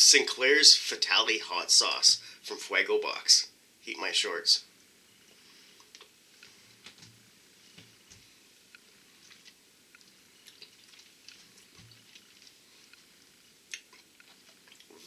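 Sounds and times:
lip smacks and tongue clicks: 0:09.2 - 0:13.0, 0:13.6 - 0:15.0.

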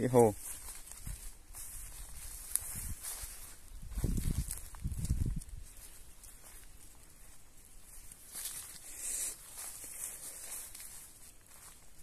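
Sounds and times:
footsteps on dirt path: 0:00.0 - 0:12.0.

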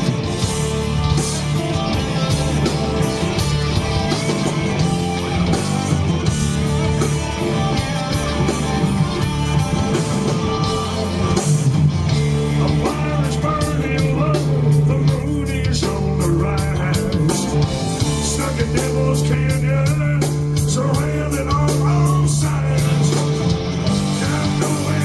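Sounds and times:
bass: 0:00.0 - 0:25.0
drums: 0:00.0 - 0:25.0
lead electric guitar: 0:00.0 - 0:25.0.

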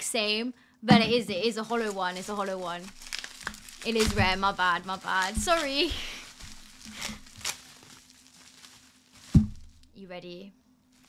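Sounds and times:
bubble wrap crinkling: 0:01.3 - 0:10.0
dull thump: 0:04.0 - 0:04.6, 0:05.3 - 0:06.7, 0:09.2 - 0:09.9.

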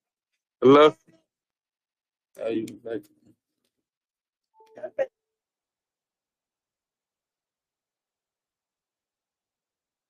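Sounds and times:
voice over phone line: 0:04.7 - 0:05.1.

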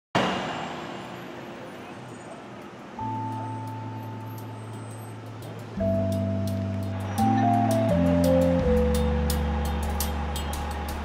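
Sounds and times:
city traffic noise: 0:00.1 - 0:11.0.

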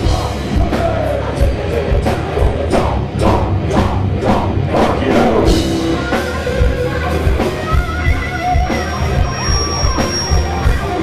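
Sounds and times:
distorted electric guitars: 0:00.0 - 0:11.0
heavy metal band playing live: 0:00.0 - 0:11.0
steady drum beat: 0:00.0 - 0:11.0.

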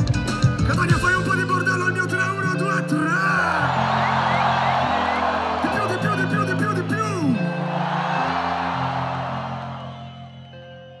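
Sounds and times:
live concert music: 0:00.0 - 0:11.0.

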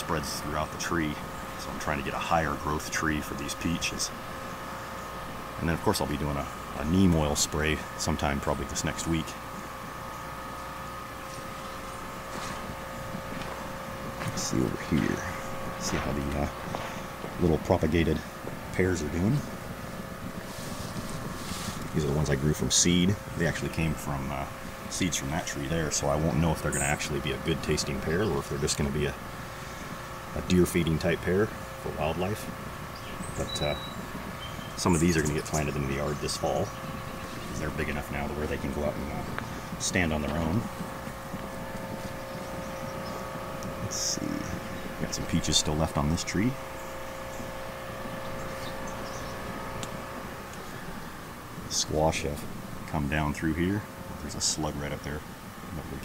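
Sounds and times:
low mechanical hum: 0:00.0 - 0:56.0
wind buffeting microphone: 0:09.4 - 0:51.7.

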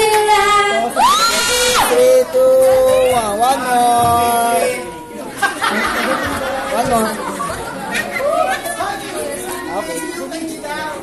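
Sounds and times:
crowd of young voices chattering: 0:00.0 - 0:11.0.

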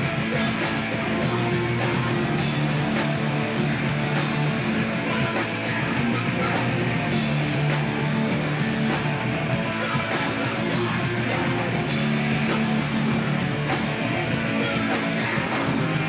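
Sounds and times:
distorted electric guitar: 0:00.0 - 0:16.0
drum kit: 0:00.0 - 0:16.0
electric bass: 0:00.0 - 0:16.0.

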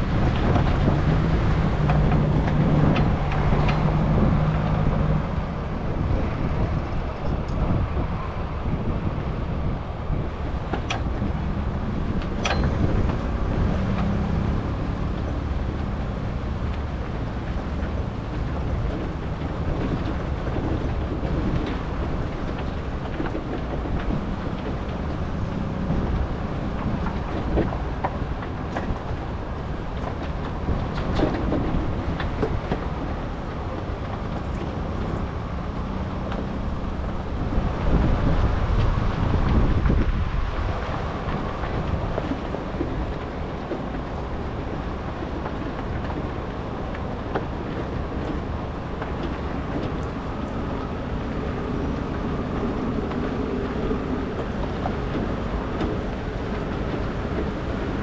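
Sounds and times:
truck engine running: 0:00.0 - 0:58.0.

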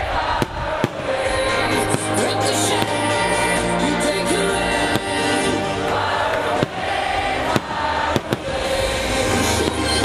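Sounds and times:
fireworks bangs: 0:00.0 - 0:03.9, 0:04.7 - 0:10.0
festival dance music: 0:00.1 - 0:10.0.

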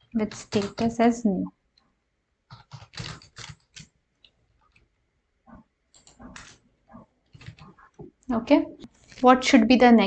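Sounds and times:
computer keyboard keystrokes: 0:00.2 - 0:01.0, 0:02.5 - 0:03.9, 0:06.0 - 0:06.6, 0:07.3 - 0:07.7.

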